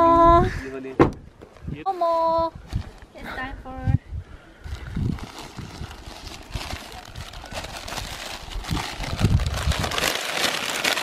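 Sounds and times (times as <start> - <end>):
plastic and paper crinkling: 4.7 - 11.0.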